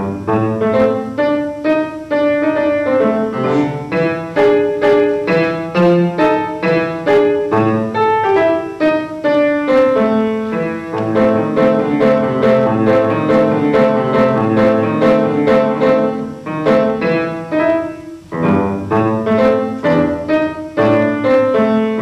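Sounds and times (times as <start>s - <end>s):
piano music: 0.0s - 22.0s.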